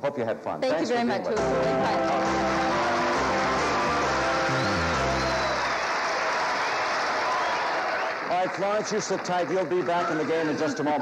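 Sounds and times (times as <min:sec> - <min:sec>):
game show music: 0:01.2 - 0:11.0
studio audience applauding: 0:01.4 - 0:11.0.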